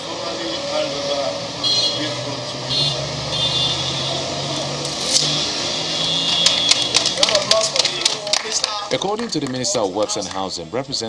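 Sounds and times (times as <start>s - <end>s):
steady engine hum: 0.0s - 10.9s
crowd noise: 0.0s - 11.0s
hands clapping: 6.3s - 10.5s.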